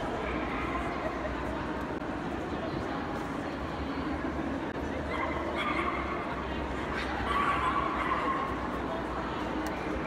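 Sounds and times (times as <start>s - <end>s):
murmur of crowd: 0.0s - 10.0s.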